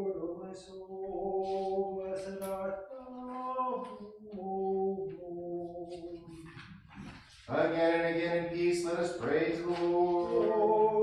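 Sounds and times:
unaccompanied church chant: 0.0 - 11.0.

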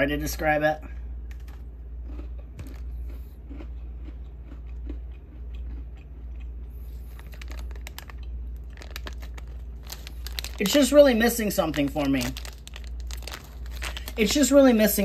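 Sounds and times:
steady low hum: 0.0 - 15.0
chewing crunchy cookie: 1.3 - 10.9, 11.6 - 14.5.

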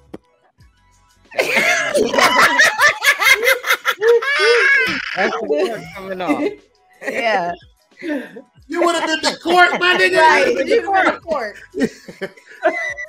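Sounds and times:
people laughing: 1.4 - 13.0.

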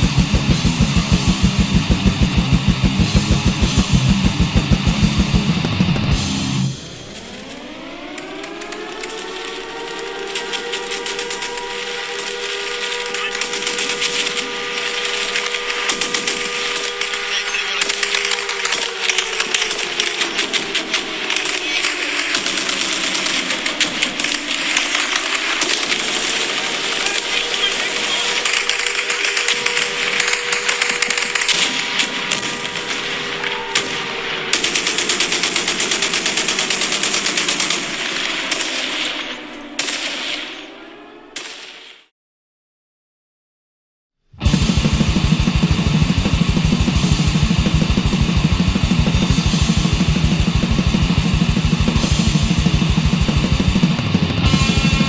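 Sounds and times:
wailing siren: 0.0 - 35.9, 44.4 - 55.0
rapid machine-gun fire: 0.0 - 40.5, 44.4 - 55.0.

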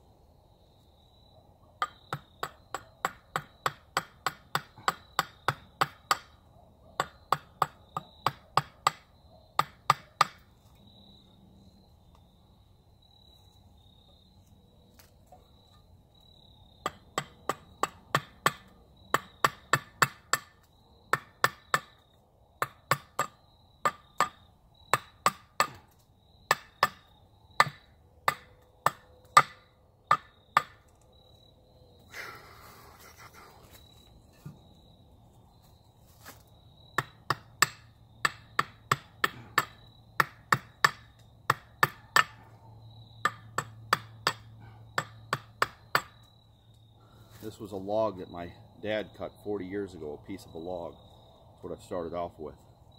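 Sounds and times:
crickets chirping: 0.0 - 52.9
hatchet chopping wood: 1.8 - 6.4, 7.0 - 10.5, 16.8 - 31.0, 36.2 - 46.3.

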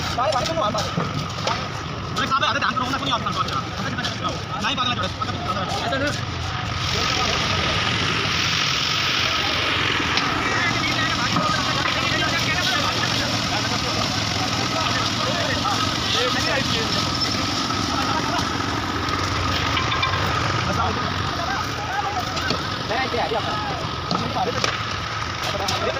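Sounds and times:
machine engine running: 0.0 - 25.9
workers' voices: 0.0 - 25.9.

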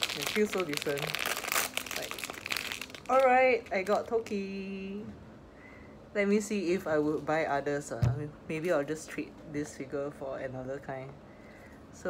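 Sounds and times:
plastic packaging crinkling: 0.0 - 4.5.

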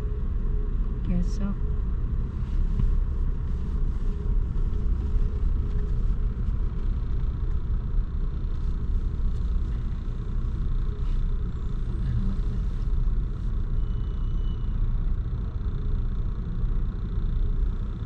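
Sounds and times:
car idling low rumble: 0.0 - 18.0.

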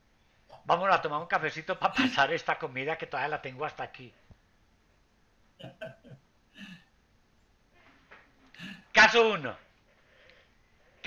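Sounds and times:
short vocal syllable: 5.6 - 6.8, 8.6 - 8.8.

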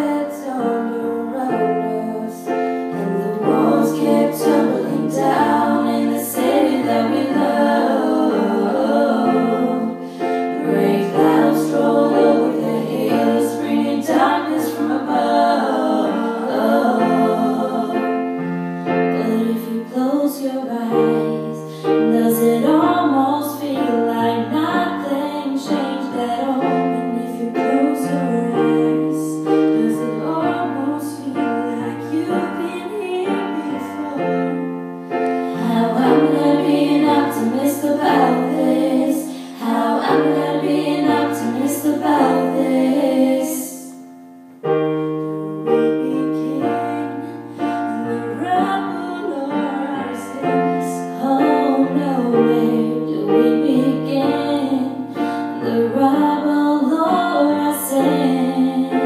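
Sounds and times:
women singing: 0.0 - 44.0, 45.6 - 59.0
keyboard piano chords: 0.0 - 59.0.

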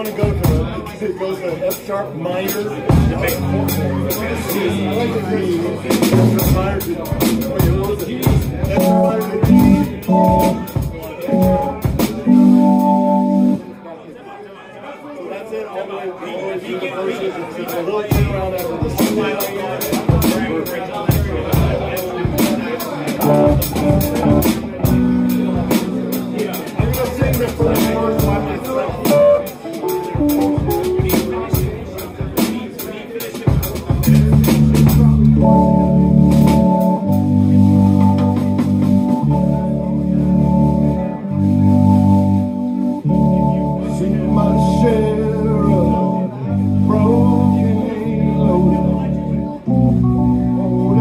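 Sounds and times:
live rock band: 2.5 - 13.7, 18.1 - 51.0
drum kit hits: 2.9 - 4.7, 5.9 - 13.2, 18.1 - 39.4.

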